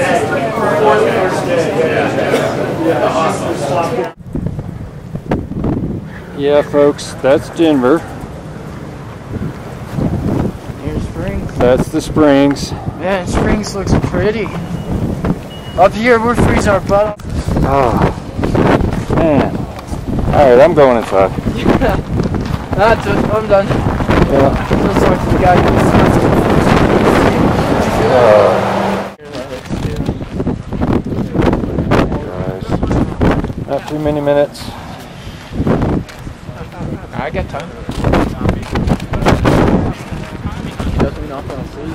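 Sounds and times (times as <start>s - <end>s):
gusting wind: 0.0s - 41.9s
wind buffeting microphone: 4.0s - 41.9s.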